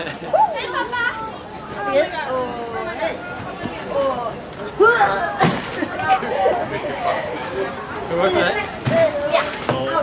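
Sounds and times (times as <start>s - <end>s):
voices chattering and calling: 0.0s - 10.0s.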